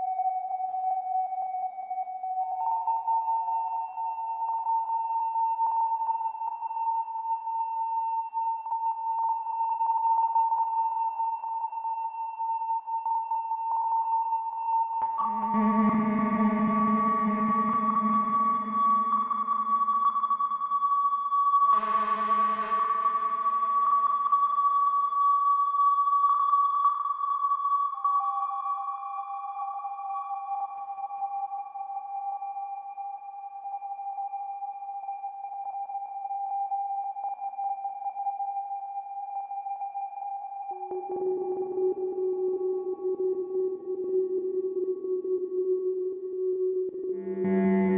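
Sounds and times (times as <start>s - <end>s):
held synthesizer tones with delay: 15.0s - 20.3s, 47.2s - 47.9s
fuller synthesizer notes: 15.0s - 20.4s, 47.2s - 47.9s.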